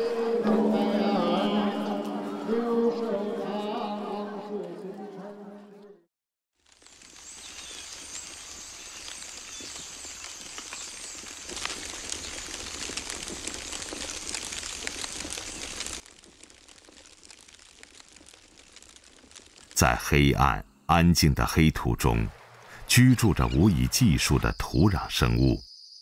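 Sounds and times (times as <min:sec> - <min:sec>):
fine crackling and rustling: 0:06.6 - 0:20.3.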